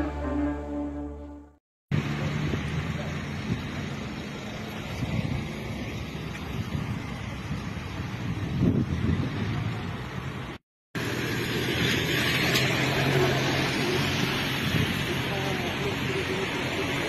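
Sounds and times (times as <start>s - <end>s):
music intro: 0.0s - 1.6s
traffic noise: 0.0s - 17.0s
people's voices: 15.1s - 17.0s.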